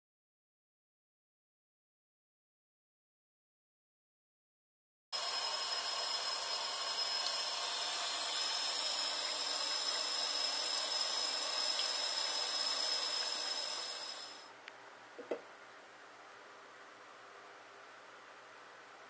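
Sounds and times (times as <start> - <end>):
water pouring into a glass: 5.4 - 14.4.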